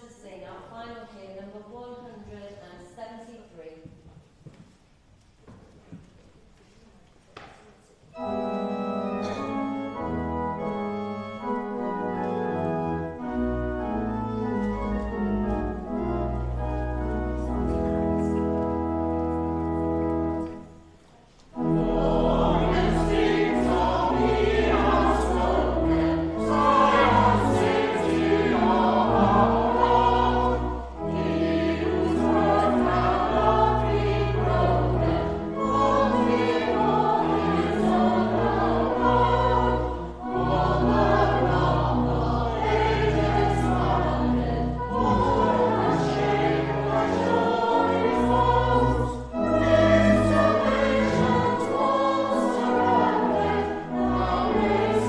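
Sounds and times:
organ notes: 8.1s - 20.9s, 21.5s - 55.0s
choir singing: 8.2s - 18.7s, 21.5s - 55.0s.

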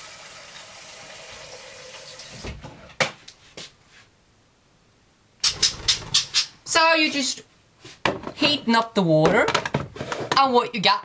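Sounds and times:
water running from tap: 0.0s - 2.4s.

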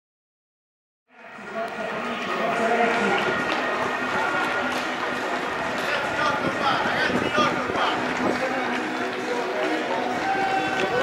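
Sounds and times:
crowd chatter: 1.1s - 11.0s
running footsteps on pavement: 1.3s - 11.0s.

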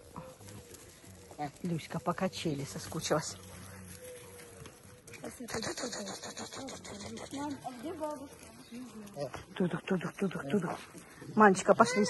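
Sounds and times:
crunching on wood chips: 0.0s - 5.5s.

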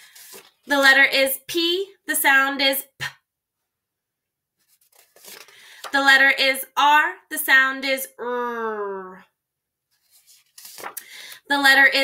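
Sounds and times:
paper flashcard rustling: 0.0s - 0.8s, 4.6s - 6.0s, 9.9s - 11.4s.

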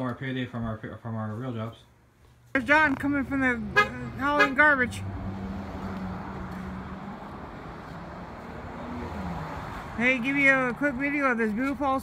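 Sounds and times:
road noise: 0.0s - 12.0s
vehicle engine droning: 2.6s - 12.0s.

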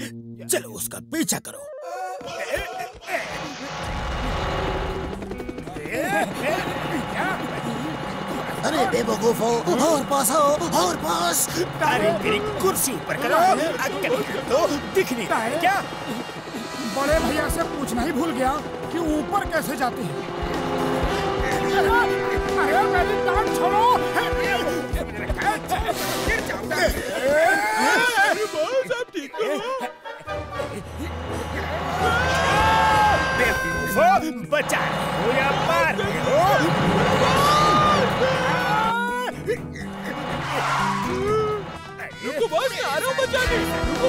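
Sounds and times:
cartoon background music: 0.0s - 44.0s
motor-like whir: 3.2s - 5.6s, 34.8s - 38.8s.

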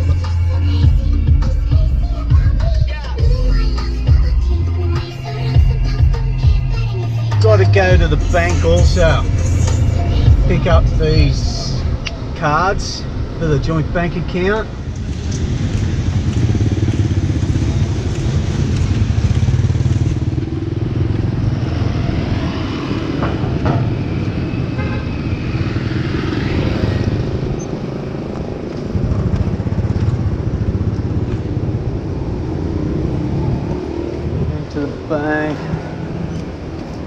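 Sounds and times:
motorbike engines passing: 5.2s - 37.0s.

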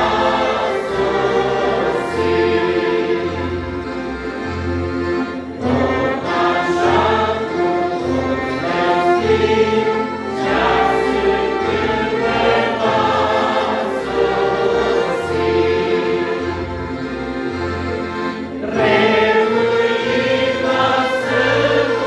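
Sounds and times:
accordions: 0.0s - 22.0s
keyboard bass notes pulsing: 0.0s - 22.0s
voices singing a hymn: 0.0s - 22.0s.

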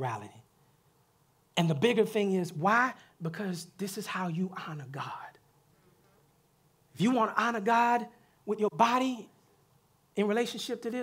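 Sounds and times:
man speaking: 0.0s - 0.5s, 1.6s - 5.4s, 6.9s - 9.3s, 10.2s - 11.0s.

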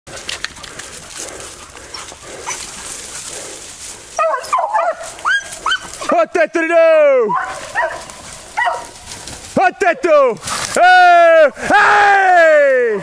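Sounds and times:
brush crackling and rustling: 0.1s - 11.4s
dog baying: 1.1s - 6.1s, 7.3s - 9.0s.

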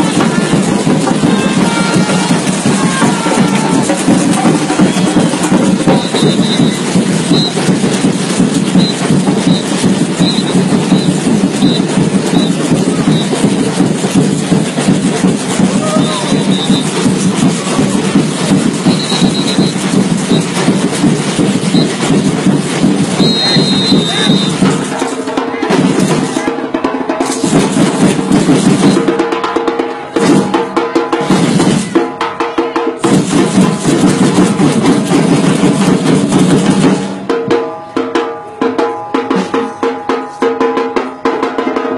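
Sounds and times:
percussion ensemble playing: 0.0s - 41.9s
samba drums rolling: 0.0s - 41.9s
high whistle: 4.8s - 7.6s, 8.8s - 13.4s, 15.8s - 17.0s, 18.8s - 20.5s, 21.7s - 22.0s, 23.2s - 24.6s.

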